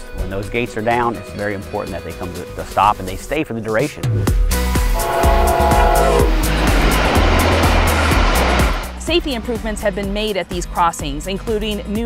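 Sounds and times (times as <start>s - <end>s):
background music with steady beat: 0.0s - 12.0s
train horn chord: 4.9s - 9.0s
train rushing past: 4.9s - 10.2s.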